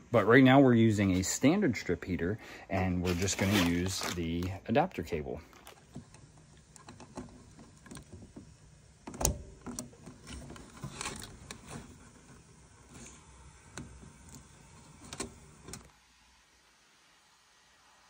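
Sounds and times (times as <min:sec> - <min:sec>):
wires rustling and clicking: 0:02.8 - 0:04.7, 0:05.4 - 0:15.9.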